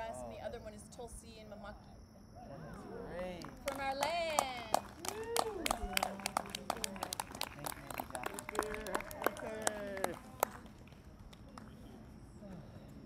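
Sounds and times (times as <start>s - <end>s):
voices calling out: 2.3s - 10.6s
group clapping: 3.3s - 12.0s.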